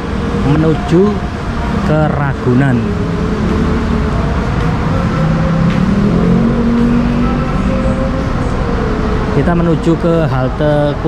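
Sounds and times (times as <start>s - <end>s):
road traffic rumble: 0.0s - 11.0s
vehicle engine drone: 0.0s - 11.0s.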